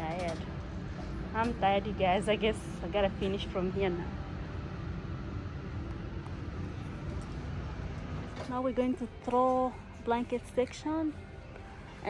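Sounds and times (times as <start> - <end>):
store background rumble: 0.0 - 12.0.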